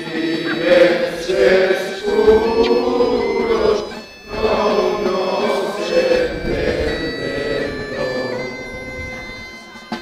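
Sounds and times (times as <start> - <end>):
bagpipes playing with drones: 0.0 - 10.0
crowd singing along: 0.0 - 10.0.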